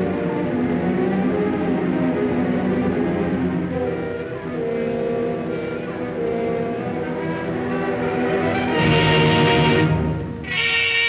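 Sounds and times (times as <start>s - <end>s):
orchestral music with sustained chords: 0.0s - 11.0s.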